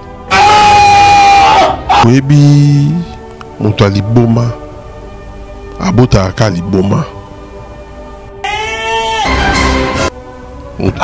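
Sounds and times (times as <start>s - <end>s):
long high cry: 0.3s - 2.1s, 8.4s - 9.6s.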